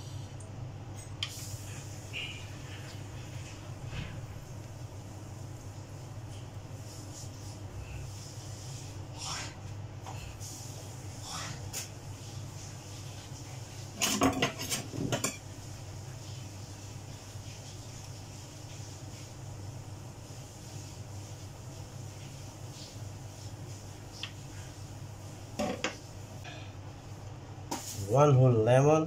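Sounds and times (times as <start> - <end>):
steady low hum: 0.0 - 29.0
utensils clattering in a steel sink: 14.0 - 15.4.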